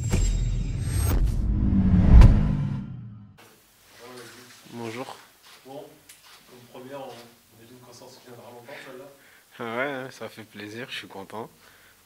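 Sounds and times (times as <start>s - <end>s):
whooshes and hits: 0.0s - 3.2s.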